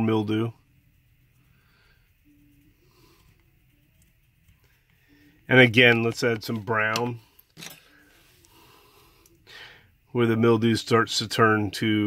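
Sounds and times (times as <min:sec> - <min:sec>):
person's quiet intake of breath: 0:07.8 - 0:10.1.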